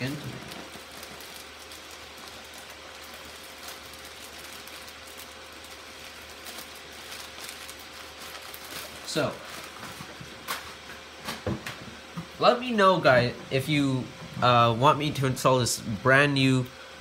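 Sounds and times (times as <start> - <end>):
items rustling in a bag: 0.0 - 11.4
desktop computer hum and whine: 0.0 - 17.0.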